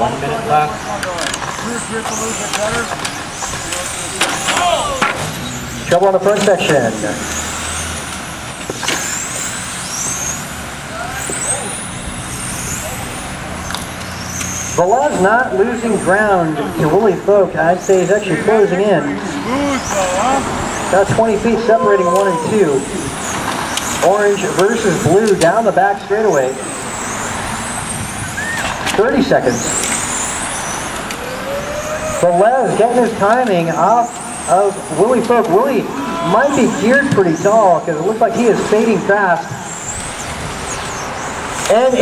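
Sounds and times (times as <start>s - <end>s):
electric toy cars whining: 0.1s - 42.0s.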